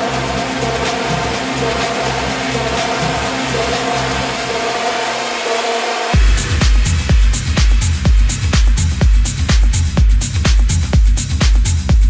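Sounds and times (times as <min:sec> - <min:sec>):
electronic dance music: 0:00.0 - 0:12.0
pulsing bass: 0:00.0 - 0:12.0.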